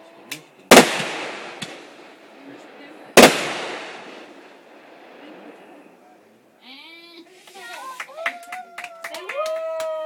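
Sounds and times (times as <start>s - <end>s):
firework bang: 0.7s - 2.2s, 3.2s - 4.8s.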